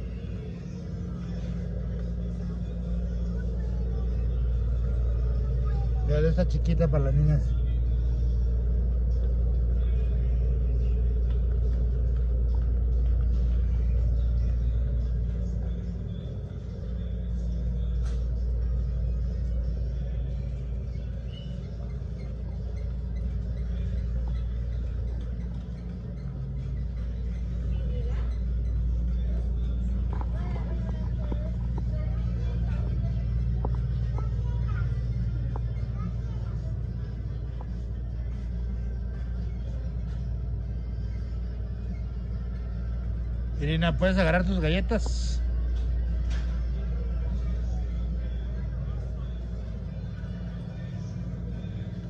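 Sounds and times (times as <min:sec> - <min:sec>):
faint music: 0:00.0 - 0:52.0
faint voices and babble: 0:00.0 - 0:52.0
supermarket background rumble: 0:00.0 - 0:52.0.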